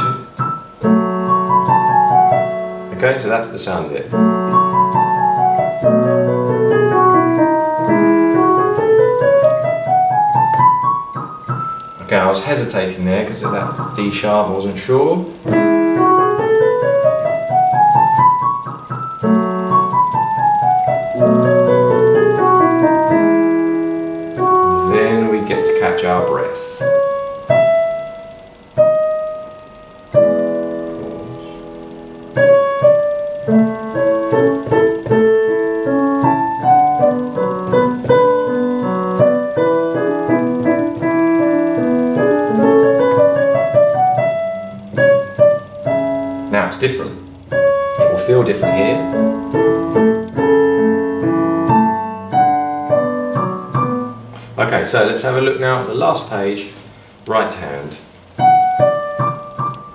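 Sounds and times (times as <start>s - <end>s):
digital piano playing: 0.0s - 59.9s.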